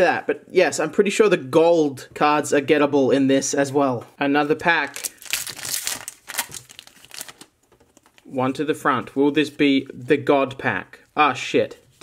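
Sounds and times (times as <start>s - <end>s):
foil wrapper crinkling: 4.8s - 8.3s.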